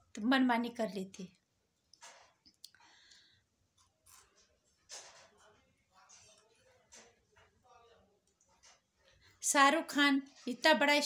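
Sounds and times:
woman speaking: 0.0 - 1.4, 9.4 - 11.0
soft breath: 2.7 - 3.6.

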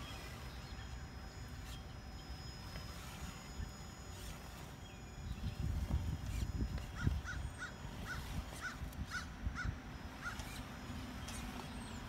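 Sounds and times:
bird calling: 0.0 - 12.0.

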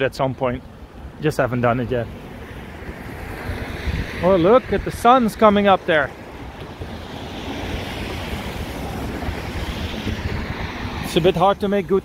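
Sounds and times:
traffic on wet road: 0.0 - 12.0
wind on microphone: 0.9 - 12.0.

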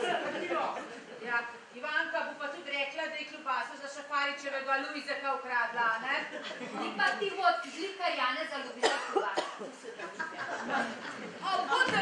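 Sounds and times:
short coughs: 8.8 - 9.7.

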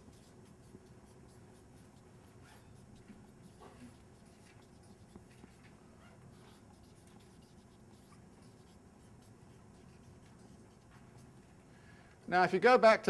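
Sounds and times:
pen scratching while writing: 0.0 - 11.4.

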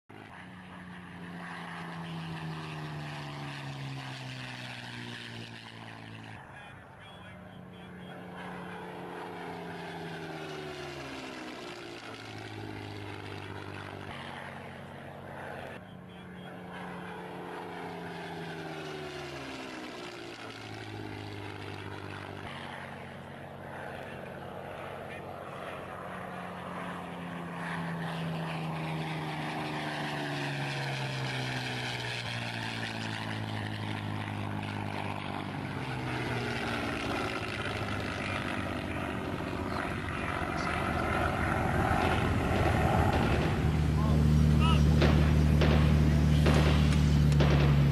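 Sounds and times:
propeller plane engine droning: 0.1 - 47.9.

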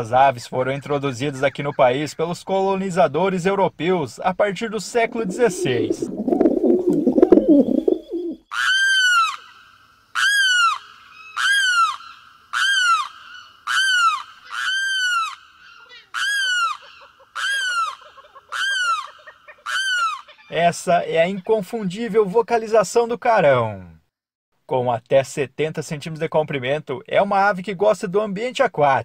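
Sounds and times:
pigeon cooing: 4.9 - 8.4
bird wailing calls: 5.0 - 9.6, 10.2 - 20.6.

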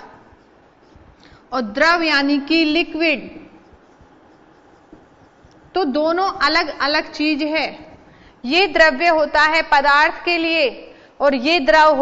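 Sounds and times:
marker pen scratching on whiteboard: 0.0 - 10.0.

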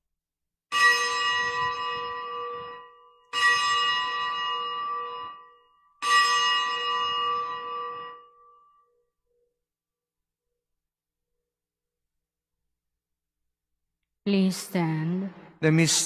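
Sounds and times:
altar bells ringing: 0.7 - 9.4.

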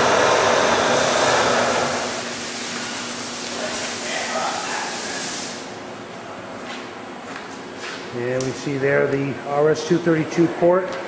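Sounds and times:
milling machine drives whirring: 0.0 - 2.3.

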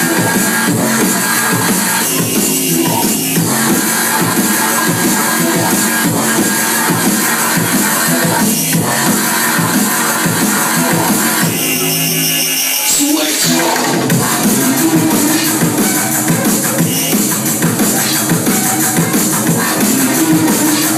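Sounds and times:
drum and bass music: 0.0 - 20.9.

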